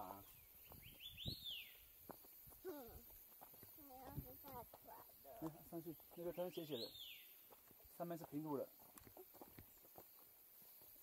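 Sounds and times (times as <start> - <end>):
bird chirp: 0.0 - 11.0.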